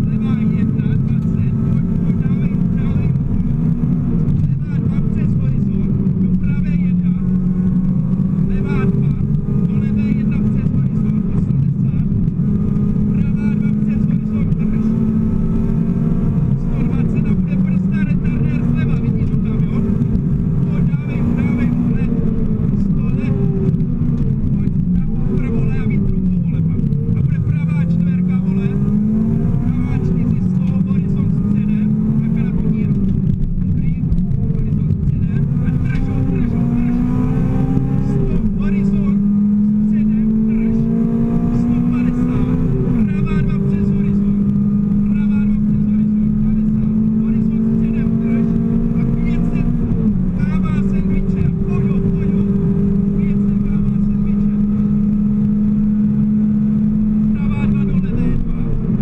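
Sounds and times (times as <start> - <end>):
car engine revving: 0.0 - 59.0
tyre and road noise: 0.0 - 59.0.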